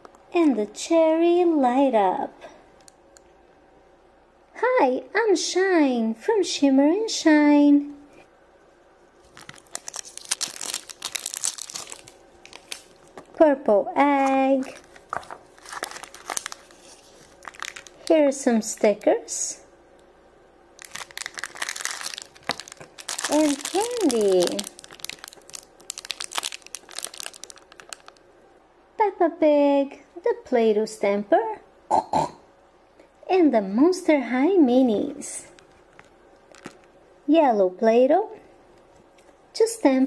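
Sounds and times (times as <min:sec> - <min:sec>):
wrapper tearing and crinkling: 0:09.2 - 0:13.4, 0:14.2 - 0:18.2, 0:20.8 - 0:28.2, 0:35.9 - 0:36.9.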